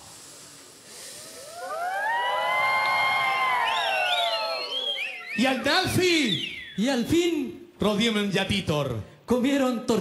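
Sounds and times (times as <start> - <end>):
audience going oooh: 1.1 - 5.7
high whoops: 1.3 - 5.4.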